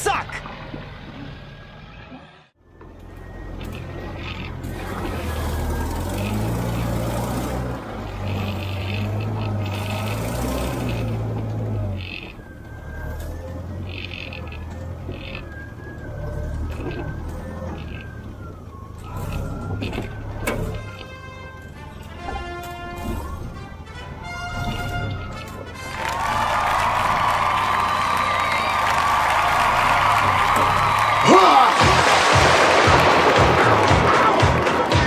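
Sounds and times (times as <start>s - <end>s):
engine revving: 0.0s - 35.0s.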